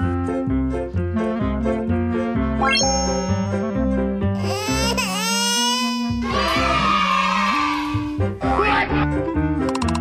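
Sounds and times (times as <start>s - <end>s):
background music: 0.0s - 10.0s
high-pitched crying: 4.4s - 6.6s.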